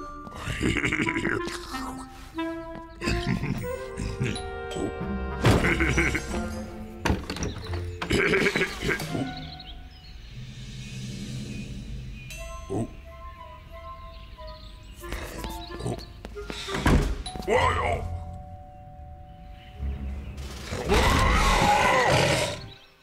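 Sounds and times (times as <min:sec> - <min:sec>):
cartoon background music: 0:00.0 - 0:23.0
knocks and thumps: 0:07.0 - 0:08.2.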